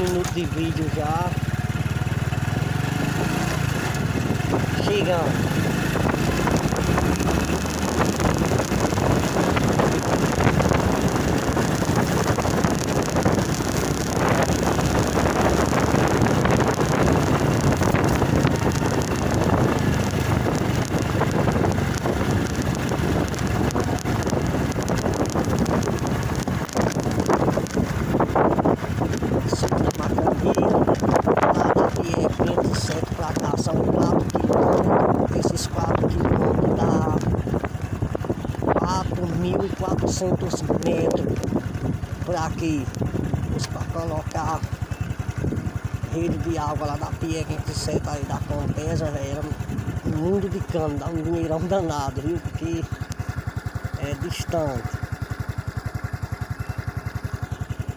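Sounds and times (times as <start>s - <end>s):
vehicle engine running: 0.0s - 57.9s
wind buffeting microphone: 0.0s - 57.9s.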